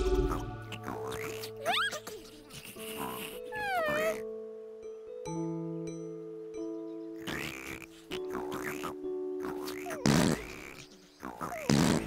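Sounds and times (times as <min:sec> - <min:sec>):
soft background music: 0:00.0 - 0:12.0
cartoon creature squeaky voice: 0:00.7 - 0:02.3.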